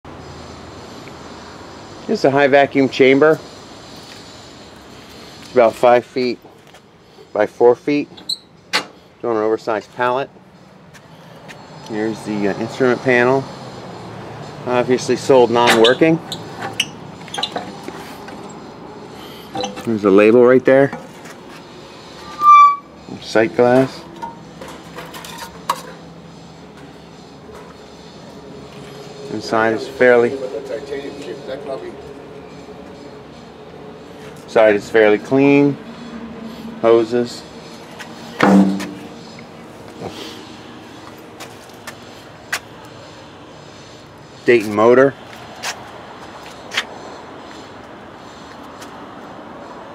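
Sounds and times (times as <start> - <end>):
short knock: 38.4 - 39.1.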